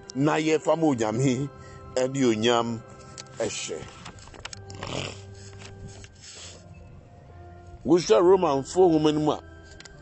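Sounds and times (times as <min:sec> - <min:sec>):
page turning rustle: 0:03.1 - 0:06.6.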